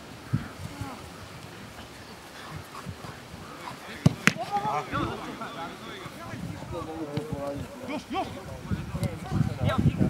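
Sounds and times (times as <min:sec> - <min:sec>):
distant voices calling out: 0:00.2 - 0:08.7
soft thuds: 0:04.0 - 0:04.7.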